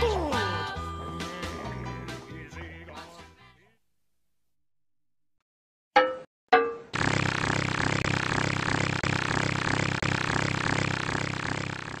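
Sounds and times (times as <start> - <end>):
loud pulsing buzzing: 7.0 - 12.0.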